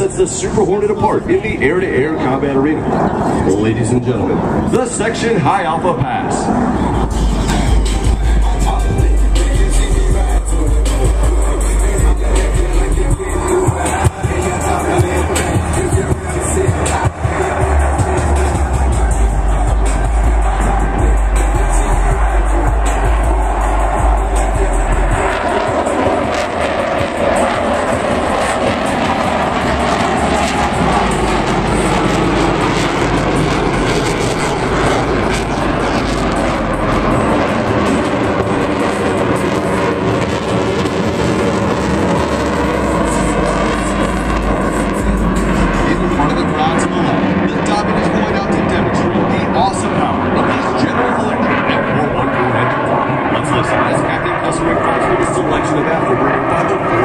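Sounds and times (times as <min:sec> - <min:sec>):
jet engine roar: 0:00.0 - 0:57.0.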